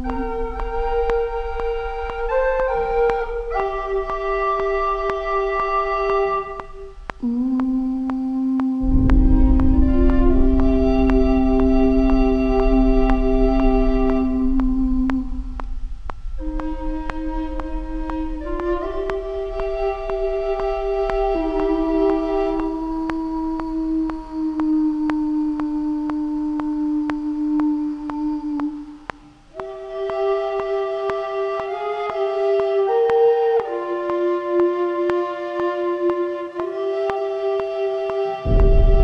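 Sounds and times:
dark cinematic sustained notes: 0.0 - 8.1, 8.8 - 27.8, 38.2 - 39.0
faint ticks: 0.0 - 38.8.

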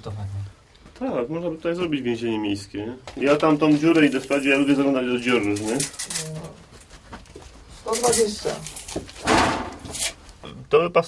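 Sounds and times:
people talking: 0.0 - 6.6, 7.9 - 8.7.

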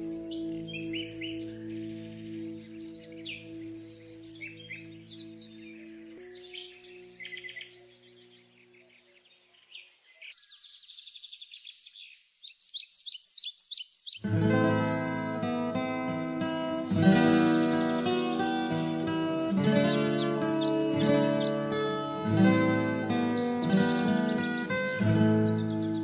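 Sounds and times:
low sustained music notes: 0.0 - 10.2, 14.3 - 26.0
birds chirping and trilling: 0.0 - 26.0.

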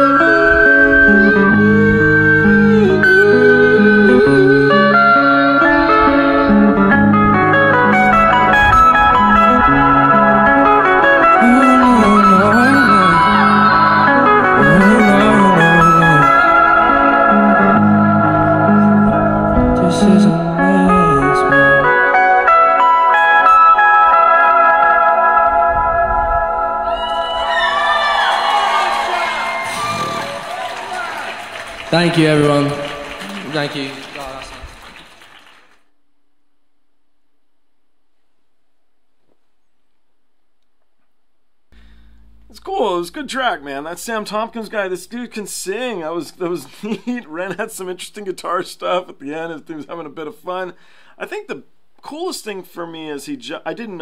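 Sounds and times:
electric guitar lead: 0.0 - 30.6, 41.8 - 42.6.

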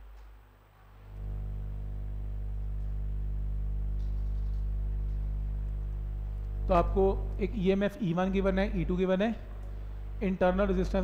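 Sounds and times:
low hum with overtones: 0.4 - 11.0.

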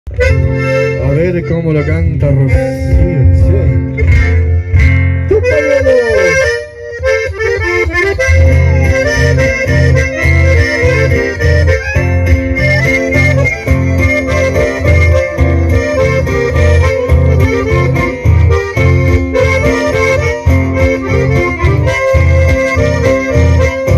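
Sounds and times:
accordion and bandoneon melody: 0.1 - 23.9
strummed acoustic guitars: 0.1 - 23.9.

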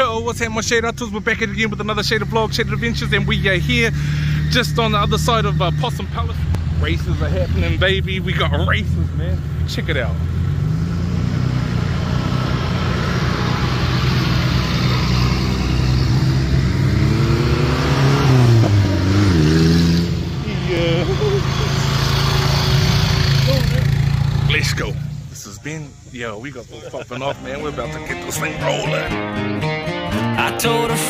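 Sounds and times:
off-road vehicle engine revving: 0.0 - 31.0.

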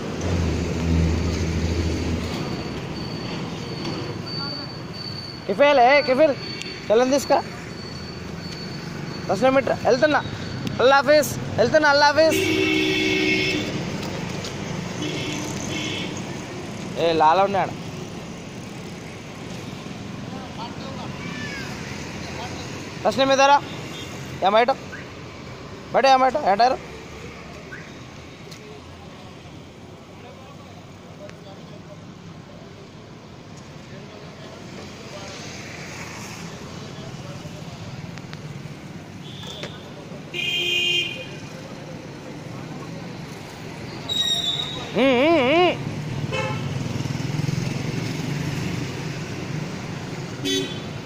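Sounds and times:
street traffic: 0.0 - 51.0.

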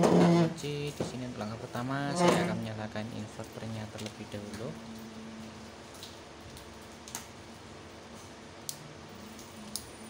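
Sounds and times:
room noise: 0.0 - 5.7.

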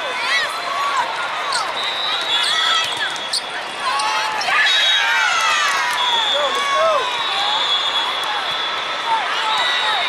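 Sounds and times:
shoes squeaking on court floor: 1.5 - 4.5.

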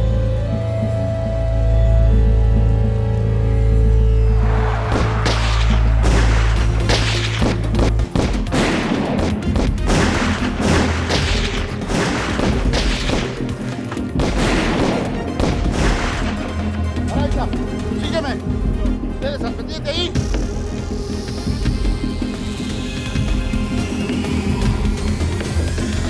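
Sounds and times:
dramatic background music: 0.0 - 26.0
rapid gunfire: 4.9 - 13.6, 14.2 - 16.5.

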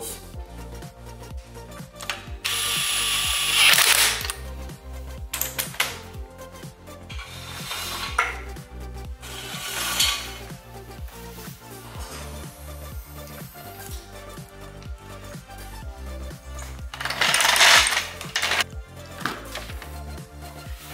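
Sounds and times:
background music with bass beat: 0.0 - 20.9
cordless power tool whirring: 2.4 - 4.4.

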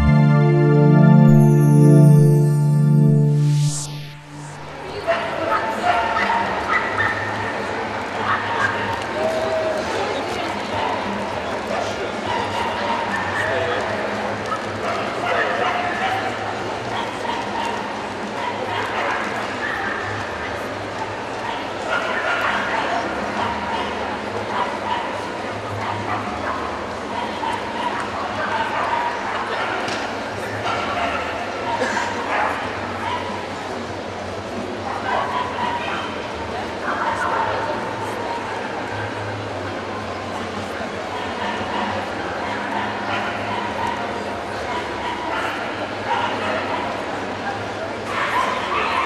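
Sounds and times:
crowd chatter: 0.0 - 49.0.

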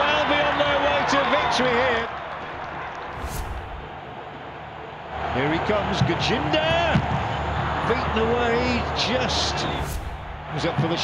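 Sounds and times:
short whoosh: 3.1 - 4.0, 9.6 - 10.5.

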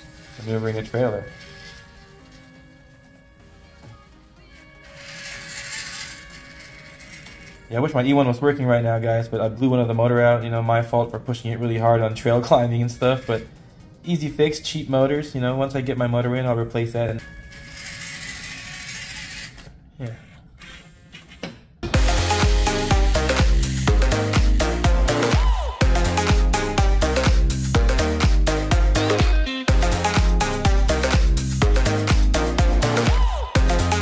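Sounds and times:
toy truck electric motor: 0.0 - 3.0, 4.5 - 7.7, 12.9 - 13.8, 17.2 - 21.4
background music: 0.0 - 19.3, 21.7 - 34.0
electronic dance music: 21.9 - 34.0.

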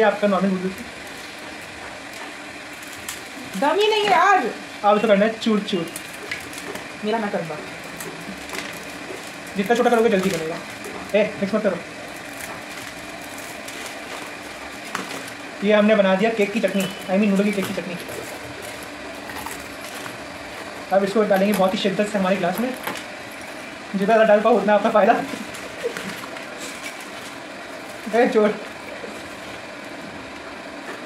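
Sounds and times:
steady background hum: 0.0 - 31.0
dry noodles crunching: 5.6 - 7.0, 7.7 - 31.0.

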